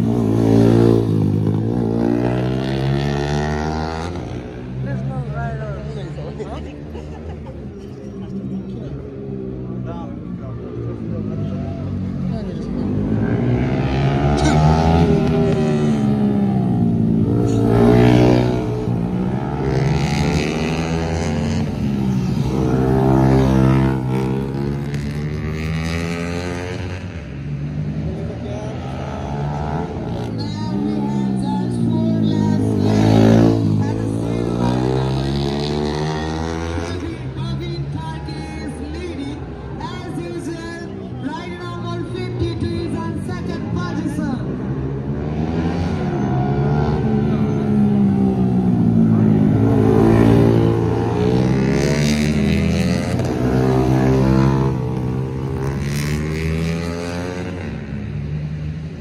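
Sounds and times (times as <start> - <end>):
racing motorcycles revving past: 0.0 - 7.4, 10.8 - 37.9, 44.5 - 59.0.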